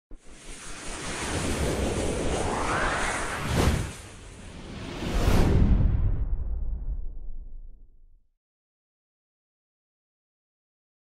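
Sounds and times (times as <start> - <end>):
whoosh with low rumble: 0.1 - 8.2.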